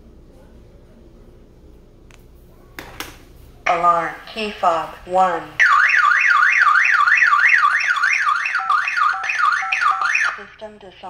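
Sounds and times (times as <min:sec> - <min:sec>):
warbling alarm siren: 0:05.6 - 0:10.5.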